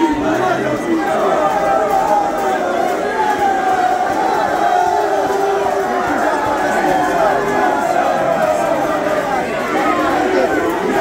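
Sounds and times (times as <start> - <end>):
crowd shouting and chanting: 0.0 - 11.0.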